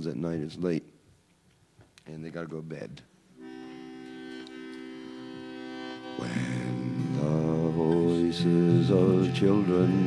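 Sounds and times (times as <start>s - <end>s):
harmonium sustained chord: 3.4s - 10.0s.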